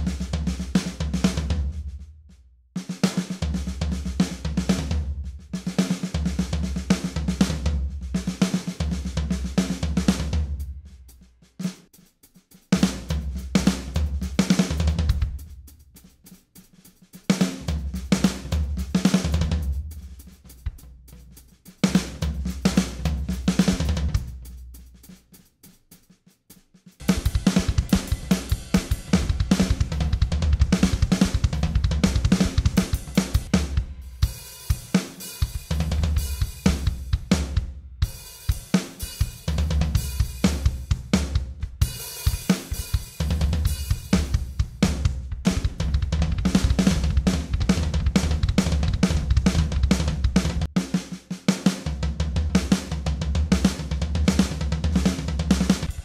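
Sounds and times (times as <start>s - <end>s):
drum kit groove: 0.0s - 56.0s.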